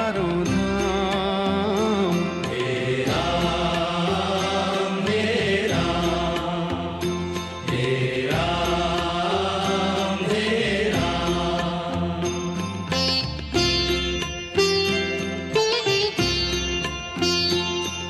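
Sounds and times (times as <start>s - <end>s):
devotional music with chanting: 0.0s - 18.0s.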